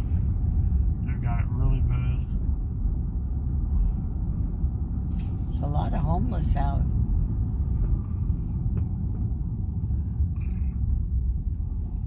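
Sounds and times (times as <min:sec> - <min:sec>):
car cabin road and engine rumble: 0:00.0 - 0:12.0.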